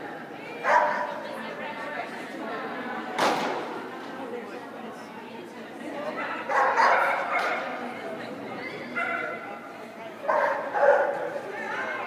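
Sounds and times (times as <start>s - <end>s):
dog barking: 0.7s - 1.1s, 6.5s - 7.6s, 10.3s - 11.2s.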